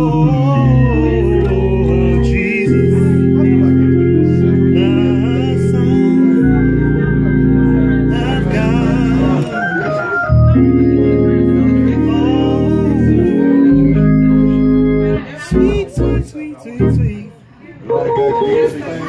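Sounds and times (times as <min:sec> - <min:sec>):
gospel electric organ chords: 0:00.0 - 0:17.3, 0:17.9 - 0:19.0.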